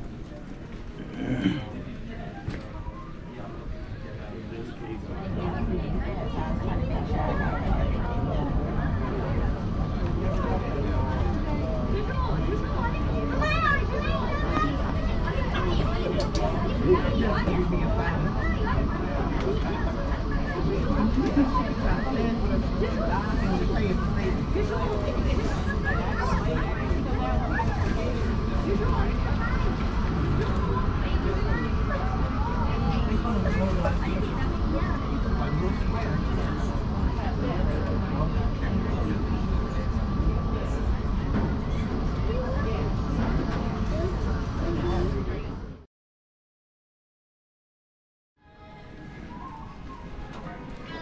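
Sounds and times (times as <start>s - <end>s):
people chattering: 0.0s - 45.8s, 48.4s - 51.0s
indistinct people talking: 0.0s - 45.9s, 48.4s - 51.0s.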